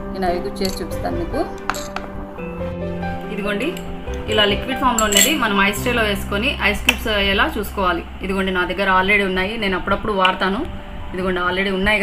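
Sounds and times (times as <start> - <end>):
background music: 0.0 - 12.0
spoon clinking against glass bowl: 3.7 - 5.6.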